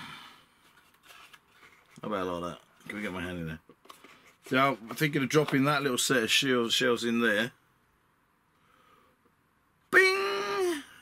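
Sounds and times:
man calling out: 9.9 - 11.0.

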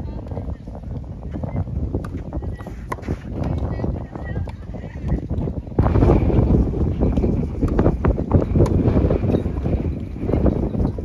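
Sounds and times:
wind rumbling on microphone: 0.0 - 11.0
tennis ball hit by racket: 2.0 - 3.6, 8.6 - 8.9.

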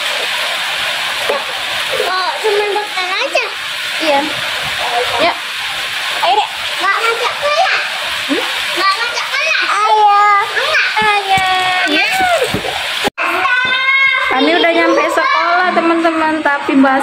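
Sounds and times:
steady rain: 0.0 - 14.4
children talking: 1.9 - 5.4, 6.1 - 17.0
woman talking: 4.0 - 5.4, 14.3 - 17.0.

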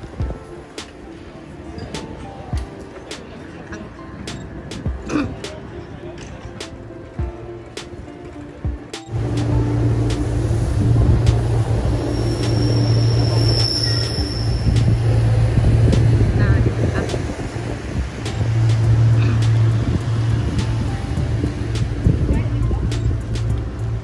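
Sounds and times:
passing traffic: 0.0 - 24.0
road rumble: 0.0 - 24.0
wind noise on microphone: 1.6 - 24.0
high thin whine: 9.1 - 23.7.

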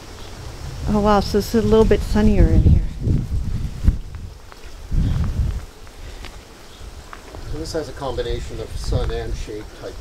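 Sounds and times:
wind rumble on microphone: 0.0 - 5.8, 6.8 - 10.0
rustling: 1.4 - 10.0
footsteps on wood chips: 3.2 - 8.0.

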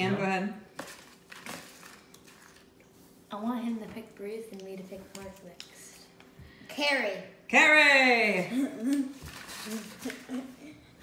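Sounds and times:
paper slips rustling and crinkling: 0.8 - 2.7, 9.1 - 10.6.

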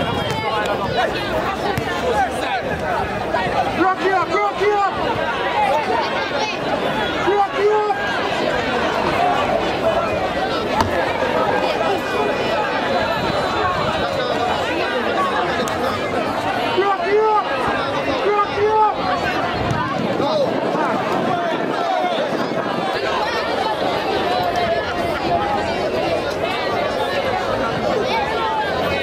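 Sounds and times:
crowd babble: 0.0 - 29.0.

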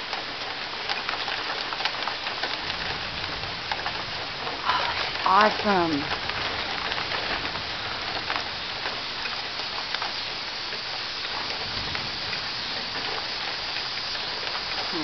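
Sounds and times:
rain pouring: 0.0 - 15.0.

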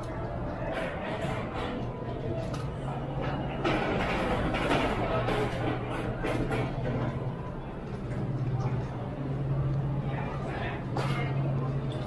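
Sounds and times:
people's voices: 0.0 - 12.0
steady low hum: 0.0 - 12.0.

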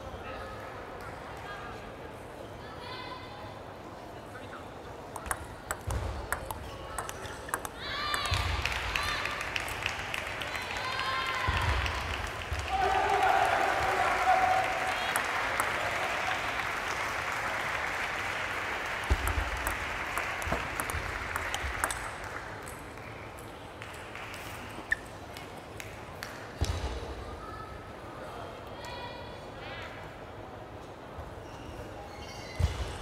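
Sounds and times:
hum of voices in large hall: 0.0 - 33.0
ball ping: 5.2 - 8.6
table tennis ball knocks: 5.2 - 8.6.

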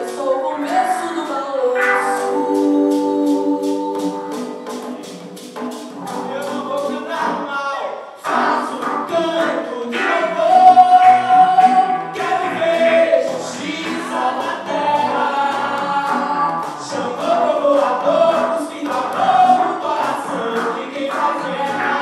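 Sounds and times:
conga drums: 0.0 - 7.5, 8.2 - 22.0
voices singing held notes: 0.0 - 22.0
electric guitar: 1.7 - 7.4.

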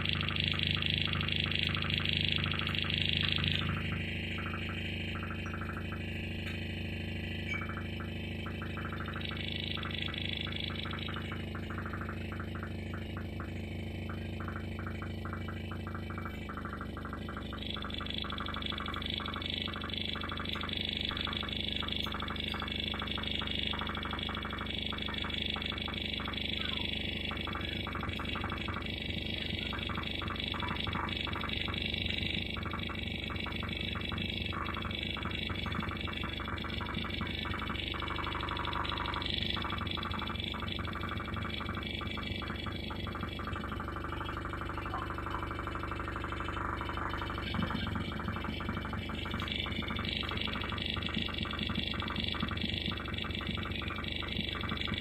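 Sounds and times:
bright high electronic layer: 0.0 - 55.0
crackling electronic texture: 0.0 - 55.0
electronic drones and hum: 0.0 - 55.0.

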